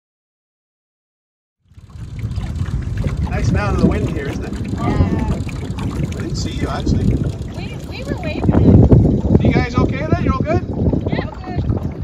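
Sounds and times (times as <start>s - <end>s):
wind rumbling on microphone: 1.6s - 12.0s
distant voices talking: 3.2s - 11.7s.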